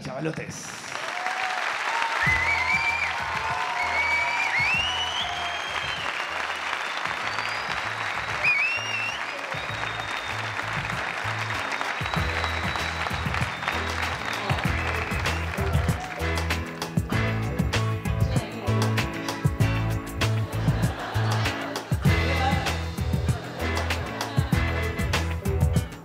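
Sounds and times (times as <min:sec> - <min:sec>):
audience applauding: 0:00.0 - 0:26.0
music with steady bass beat: 0:09.7 - 0:26.0.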